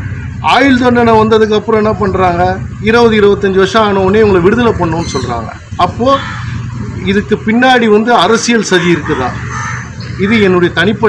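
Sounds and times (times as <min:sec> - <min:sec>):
man talking: 0:00.4 - 0:06.3, 0:06.9 - 0:09.4, 0:10.2 - 0:11.0
bird call: 0:08.6 - 0:10.6.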